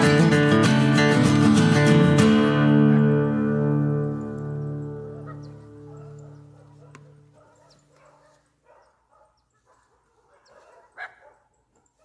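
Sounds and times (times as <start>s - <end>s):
guitar music: 0.0s - 7.6s
distant dog barks: 4.6s - 12.0s.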